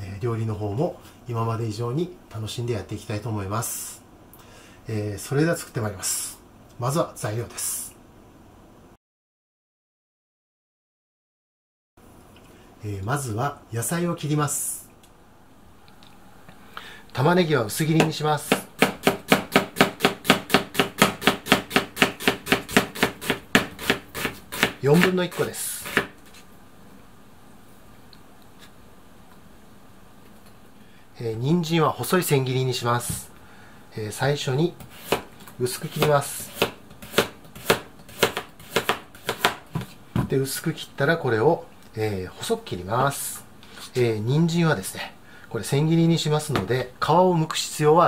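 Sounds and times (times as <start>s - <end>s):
knife slicing onion on board: 18.5s - 26.2s, 34.8s - 39.9s.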